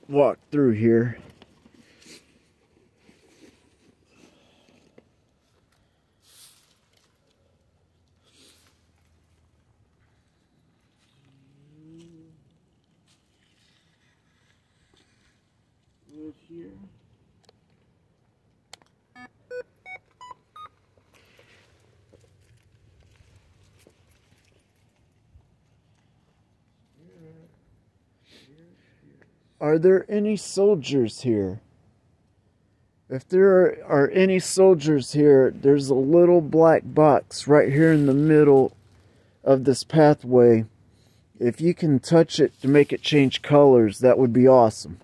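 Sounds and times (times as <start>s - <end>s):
rustle: 1.1s - 17.1s, 21.0s - 27.6s, 37.6s - 39.4s, 42.3s - 43.8s
short rising beeps: 19.2s - 20.8s
footsteps on dirt path: 21.0s - 26.4s.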